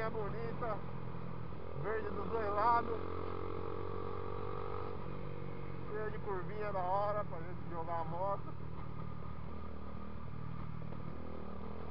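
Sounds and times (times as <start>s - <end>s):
motorcycle engine cruising: 0.0s - 11.9s
road and wind noise: 0.0s - 11.9s.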